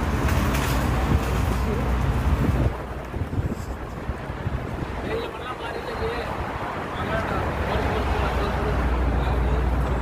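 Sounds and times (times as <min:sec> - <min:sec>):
road traffic noise: 0:00.0 - 0:10.0
wind buffeting microphone: 0:00.0 - 0:10.0.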